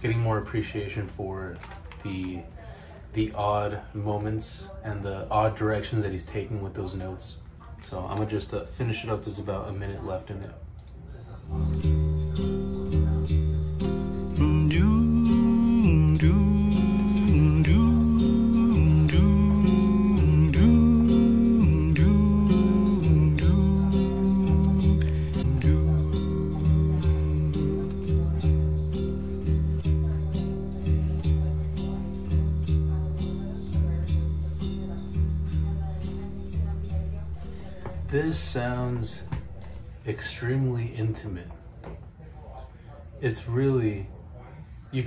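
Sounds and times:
nylon-string acoustic guitar: 0:11.5 - 0:39.9
man's wordless vocal: 0:14.3 - 0:28.1, 0:38.0 - 0:39.5.

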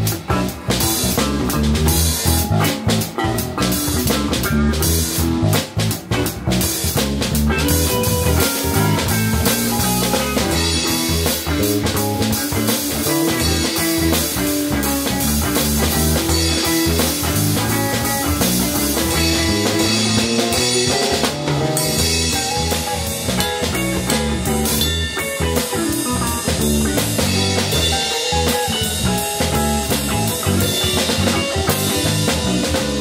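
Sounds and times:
drum kit with open hi-hat: 0:00.0 - 0:33.0
electric bass: 0:00.0 - 0:33.0
electric guitar phrases: 0:00.0 - 0:33.0.

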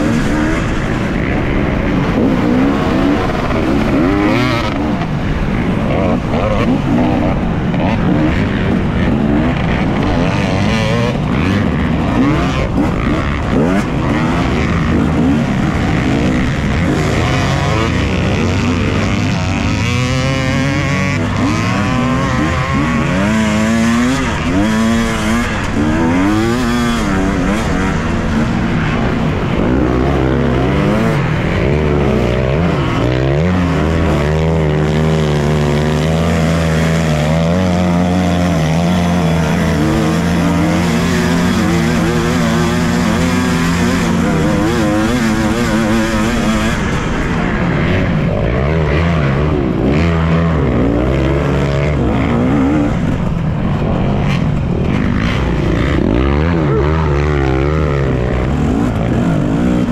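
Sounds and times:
two-stroke dirt bike engine: 0:00.0 - 0:59.9.

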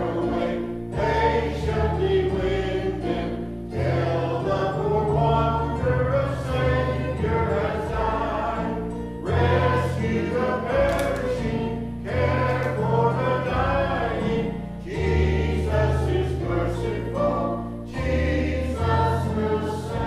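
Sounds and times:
church choir singing hymn: 0:00.0 - 0:20.0.

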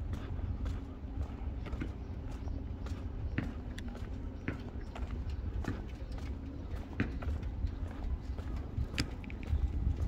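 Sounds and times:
footsteps on hard pavement: 0:00.0 - 0:10.0
steady low rumble: 0:00.0 - 0:10.0.

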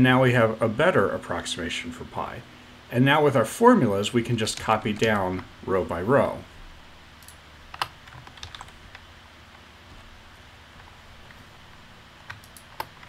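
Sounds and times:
faint steady hum: 0:00.0 - 0:13.0
keyboard and mouse clicks: 0:12.2 - 0:13.0.

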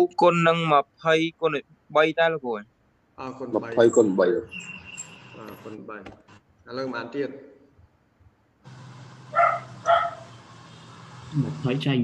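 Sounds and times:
steady low hum: 0:07.9 - 0:12.0
dog barking: 0:09.3 - 0:10.3.

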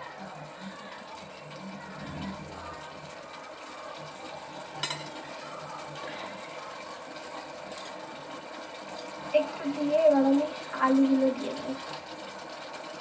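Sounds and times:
steady mechanical hum: 0:00.0 - 0:13.0
metal kitchenware clinking: 0:04.8 - 0:05.2.

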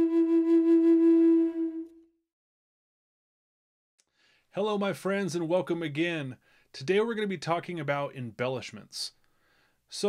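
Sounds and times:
flute holding long note: 0:00.0 - 0:02.2.

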